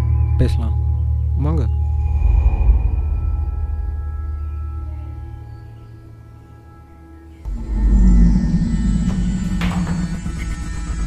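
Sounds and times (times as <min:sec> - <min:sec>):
low held drone: 0:00.0 - 0:11.0.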